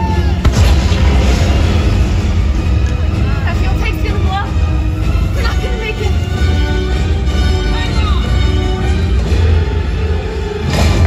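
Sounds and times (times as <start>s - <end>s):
loud soundtrack music: 0.0s - 11.0s
heavy low rumble: 0.3s - 7.6s
pyrotechnic explosion boom: 0.4s - 3.4s.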